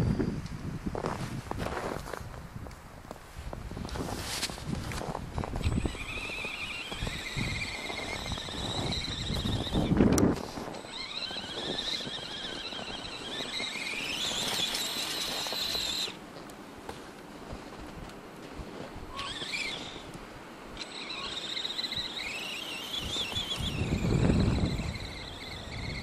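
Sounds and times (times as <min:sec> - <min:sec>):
rc car electric motor whine: 0:05.6 - 0:16.2, 0:19.1 - 0:20.2, 0:20.8 - 0:26.0.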